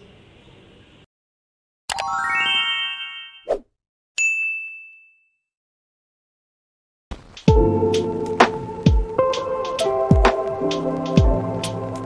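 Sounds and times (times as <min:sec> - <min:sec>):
notification bell ding: 0:04.2 - 0:05.4.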